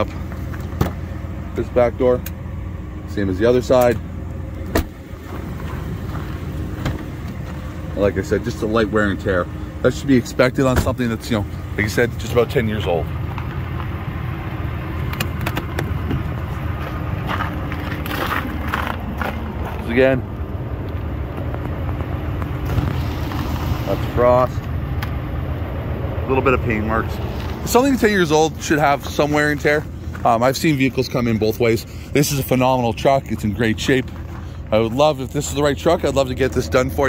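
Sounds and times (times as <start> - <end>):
truck engine idling: 0.0 - 37.0.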